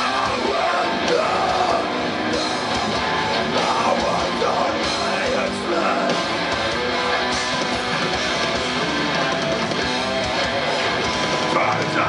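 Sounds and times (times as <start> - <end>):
live metal band playing: 0.0 - 12.0.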